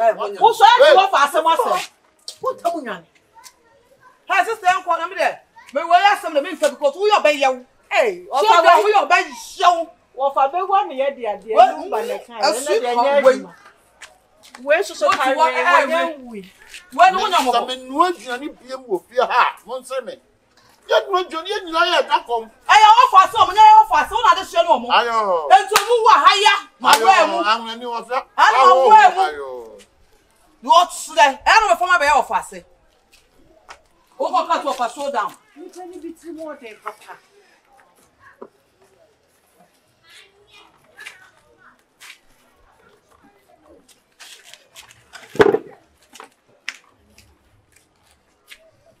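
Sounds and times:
people talking loudly: 0:00.0 - 0:47.4
sharp hand claps: 0:25.7 - 0:26.0, 0:26.8 - 0:27.2.

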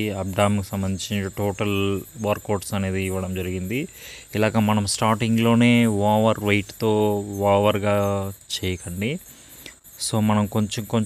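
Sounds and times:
man talking: 0:00.0 - 0:09.3, 0:10.0 - 0:11.0
faint high-pitched chirring: 0:00.0 - 0:11.0.

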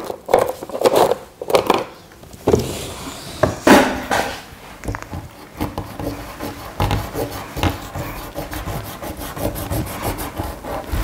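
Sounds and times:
pencil scratching on paper: 0:05.2 - 0:11.0.

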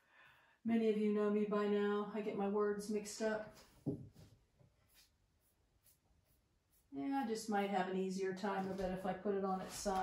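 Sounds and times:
paintbrush scratching on wood: 0:04.7 - 0:07.6.

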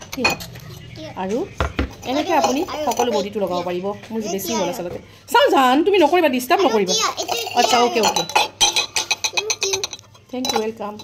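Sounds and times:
steel tumbler clattering on glass bowl: 0:07.2 - 0:11.0.

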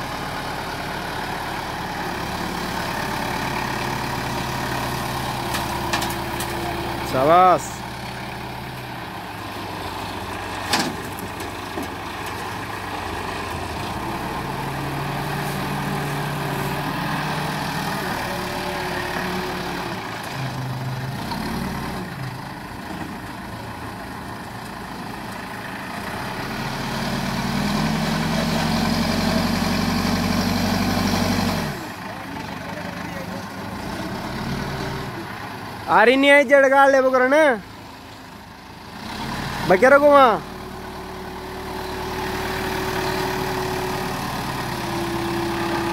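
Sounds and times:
backhoe diesel engine working: 0:00.0 - 0:45.9.

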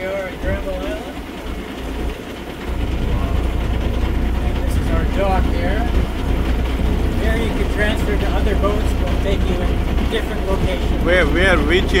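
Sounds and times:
boat motor rumble: 0:00.0 - 0:12.0
water noise: 0:00.0 - 0:12.0
wind: 0:00.0 - 0:12.0.

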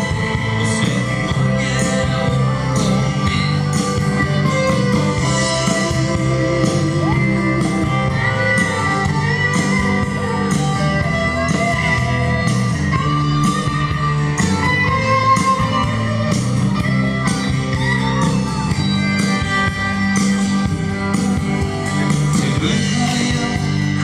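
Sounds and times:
acoustic guitar strummed: 0:00.0 - 0:24.0
drums and cymbals: 0:00.0 - 0:24.0.

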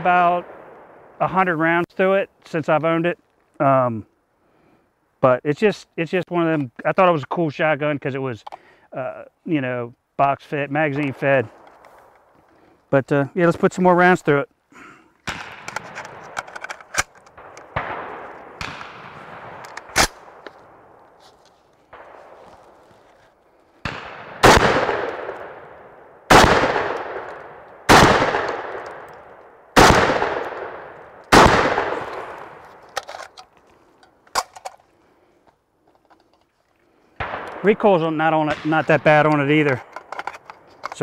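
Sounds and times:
shotgun shots echoing: 0:00.0 - 0:01.2, 0:15.2 - 0:21.1, 0:21.9 - 0:22.8, 0:23.8 - 0:32.9, 0:37.2 - 0:40.2
magazine being seated: 0:15.2 - 0:23.4, 0:32.0 - 0:36.8, 0:39.1 - 0:41.0.

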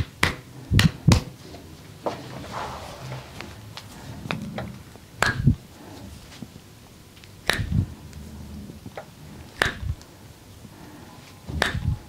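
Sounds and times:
sharp snap of hands: 0:00.0 - 0:01.3, 0:07.2 - 0:07.8, 0:09.5 - 0:10.1, 0:11.6 - 0:12.0
dull thumps: 0:11.5 - 0:12.0.

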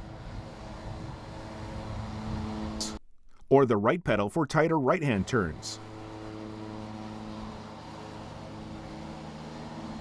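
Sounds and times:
mower engine running: 0:00.0 - 0:03.0, 0:05.0 - 0:10.0.

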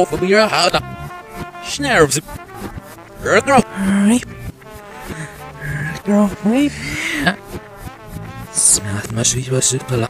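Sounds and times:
human voice played backwards: 0:03.2 - 0:04.3, 0:05.0 - 0:07.4, 0:08.5 - 0:09.6.

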